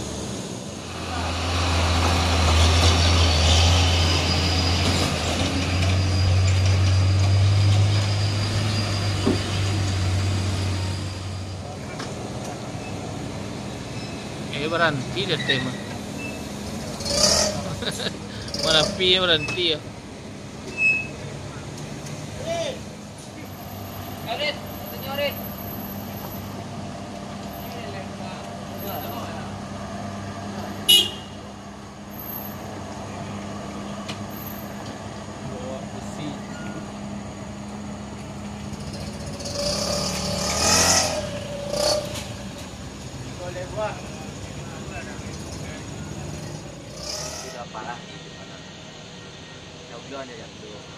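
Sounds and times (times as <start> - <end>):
traffic engines humming: 0.0 - 50.9.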